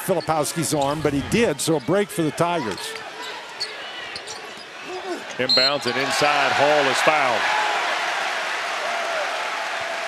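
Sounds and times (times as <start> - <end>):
sneakers squeaking on court: 2.6 - 4.8.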